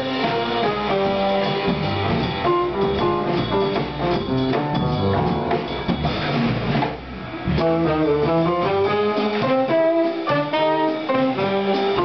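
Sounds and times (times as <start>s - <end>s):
saxophone melody: 0.0s - 3.5s, 7.5s - 12.0s
bass: 0.0s - 12.0s
drums: 0.0s - 12.0s
piano: 0.0s - 12.0s.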